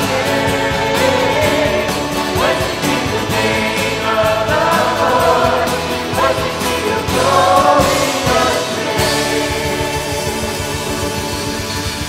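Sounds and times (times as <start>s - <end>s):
acoustic guitar: 0.0s - 12.0s
band accompaniment: 0.0s - 12.0s
group singing a worship song: 0.0s - 12.0s.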